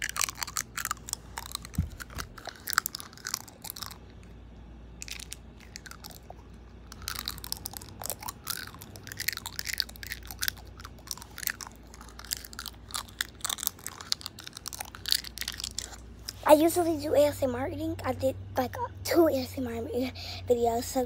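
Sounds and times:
crunchy chewing: 0:00.0 - 0:04.4, 0:05.0 - 0:16.4.

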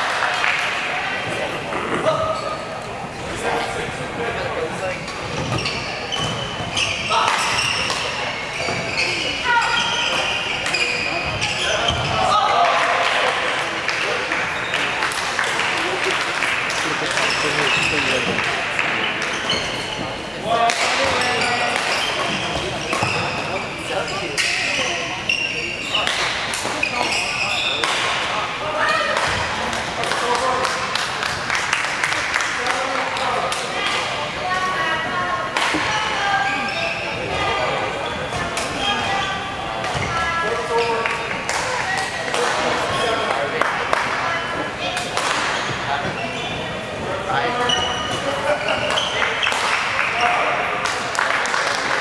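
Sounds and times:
people talking: 0:00.0 - 0:31.4, 0:32.0 - 0:52.0
shoes squeaking on court: 0:05.0 - 0:12.4, 0:17.0 - 0:20.3, 0:21.0 - 0:27.9, 0:45.6 - 0:49.6
racket hitting shuttlecock: 0:45.0 - 0:45.6.

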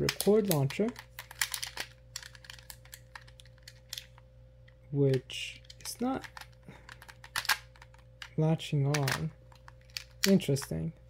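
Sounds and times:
plastic parts clicking and rattling: 0:00.0 - 0:04.2, 0:05.1 - 0:10.8.

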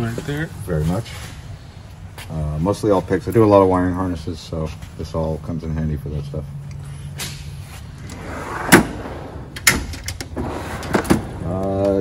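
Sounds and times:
steel drawer sliding shut: 0:08.0 - 0:11.4
metal bang: 0:08.2 - 0:11.4.

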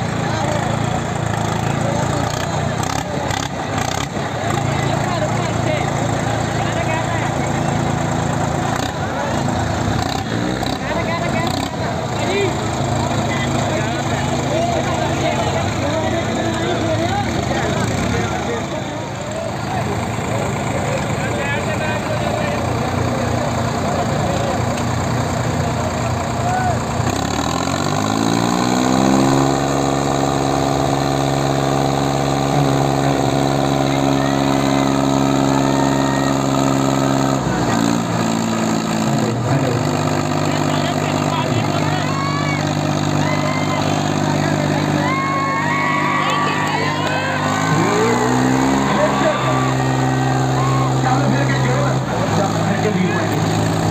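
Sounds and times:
crowd chattering: 0:00.0 - 0:53.9
tractor engine revving: 0:00.0 - 0:53.9.

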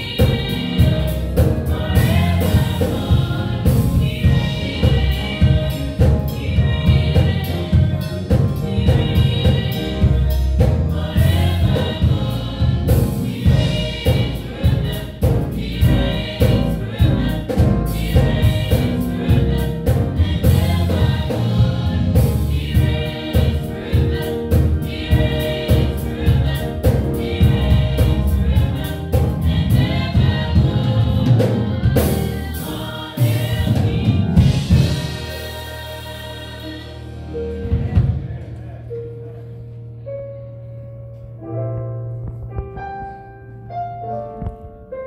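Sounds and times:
instrumental accompaniment beat: 0:00.0 - 0:38.8
group singing gospel: 0:00.0 - 0:40.0.

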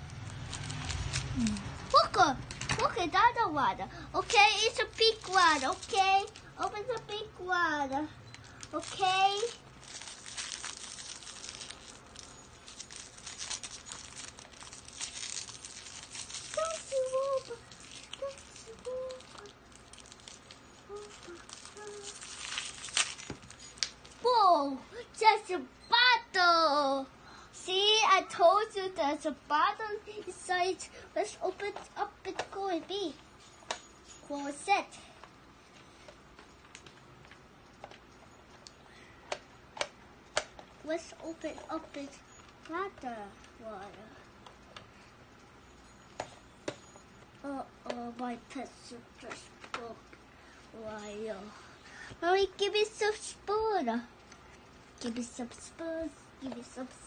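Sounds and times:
wrapper paper crackling: 0:00.0 - 0:03.0, 0:04.2 - 0:07.1, 0:08.3 - 0:24.3.

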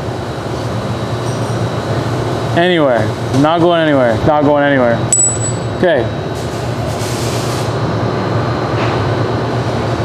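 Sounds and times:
machine humming and hissing: 0:00.0 - 0:10.0.

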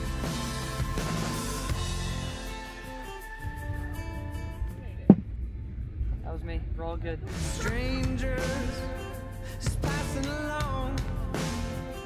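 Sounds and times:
music: 0:00.0 - 0:06.1, 0:07.2 - 0:12.0.

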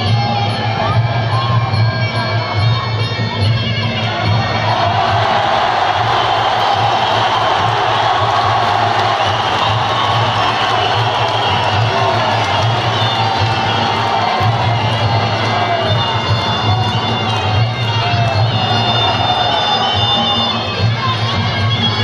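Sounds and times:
loud music with heavy bass: 0:00.0 - 0:22.0
spectators cheering and shouting: 0:00.0 - 0:22.0.

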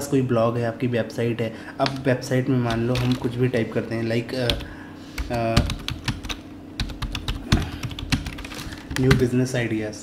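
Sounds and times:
computer keyboard typing: 0:02.7 - 0:03.7, 0:04.4 - 0:09.3.

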